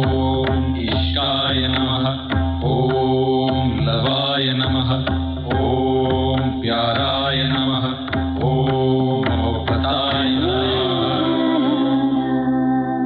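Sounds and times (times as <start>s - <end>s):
chant-like vocal notes: 0.0s - 13.0s.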